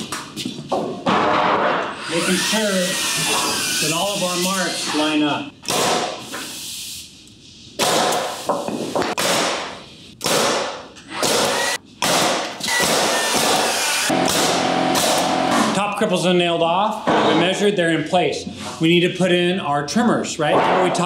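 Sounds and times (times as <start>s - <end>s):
pneumatic nailer firing into wood: 5.6s - 6.3s, 7.8s - 15.7s.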